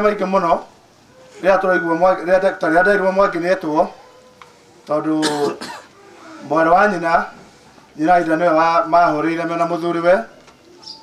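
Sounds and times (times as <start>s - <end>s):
man talking: 0.0s - 0.7s, 1.4s - 4.0s, 4.9s - 5.8s, 6.4s - 7.4s, 8.0s - 10.4s
man coughing: 5.2s - 5.9s.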